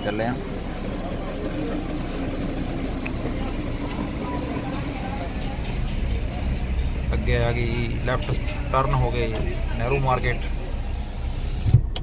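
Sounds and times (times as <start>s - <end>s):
car engine and tyres hum: 0.0s - 12.0s
faint street noise: 0.0s - 12.0s.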